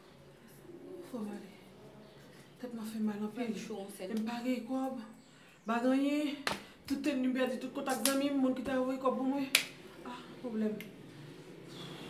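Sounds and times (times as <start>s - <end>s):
woman speaking: 2.6s - 10.9s
sharp snap: 7.9s - 8.3s, 9.5s - 9.8s.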